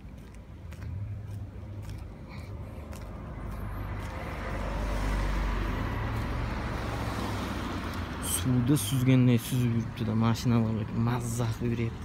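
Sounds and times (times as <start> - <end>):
low engine hum: 0.0 - 12.0
car driving past: 1.3 - 8.3.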